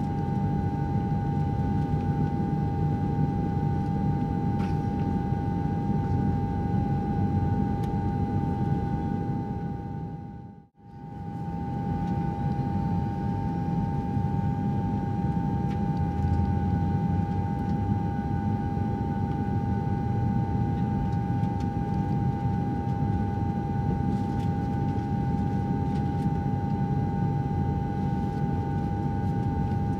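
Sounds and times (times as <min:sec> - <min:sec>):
jet airliner cabin rumble: 0:00.0 - 0:29.9.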